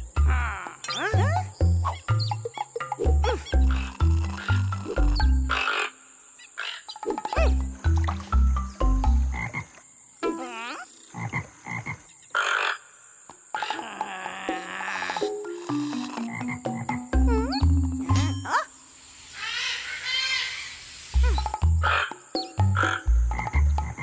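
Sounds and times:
cartoon frogs deep croaks: 0:00.0 - 0:08.2, 0:09.1 - 0:18.1, 0:21.2 - 0:24.0
high squeaky calls: 0:00.0 - 0:08.2, 0:14.9 - 0:22.2.

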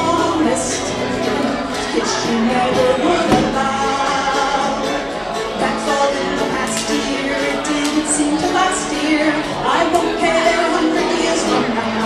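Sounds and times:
bluegrass band playing: 0:00.0 - 0:12.0
woman singing: 0:00.0 - 0:12.0.

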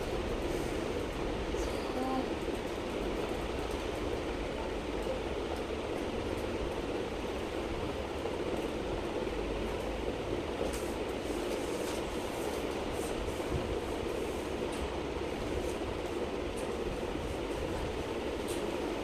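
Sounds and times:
clothes and plastic rustling: 0:10.6 - 0:14.8.

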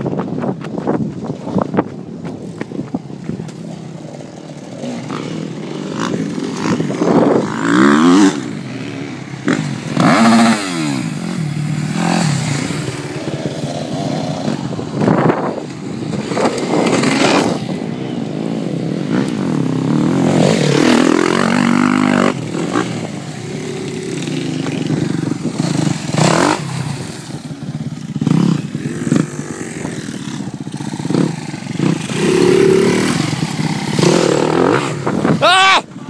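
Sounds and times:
motocross bike engine revving: 0:03.8 - 0:35.6.

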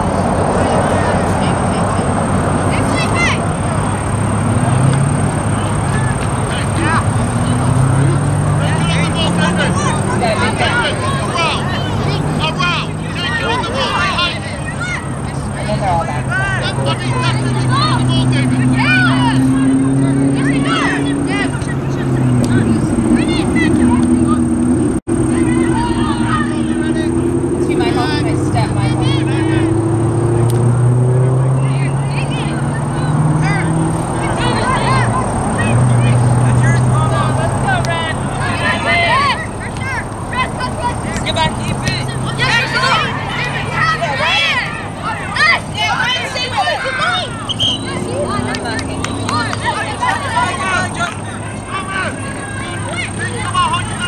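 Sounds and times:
low engine hum: 0:00.0 - 0:54.0
players and spectators calling out: 0:00.0 - 0:54.0.

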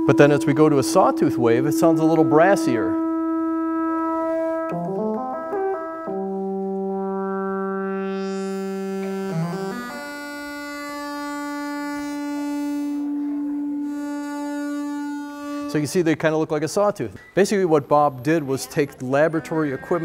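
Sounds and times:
synthesizer playing brassy notes: 0:00.0 - 0:16.2.

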